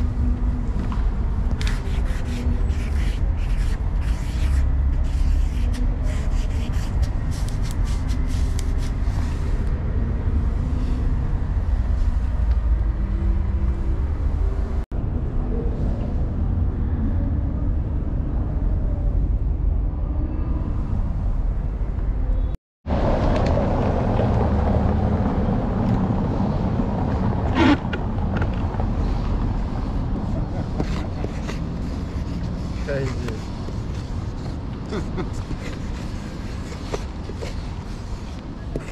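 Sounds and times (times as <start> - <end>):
low rumble of street traffic: 0.0 - 38.9.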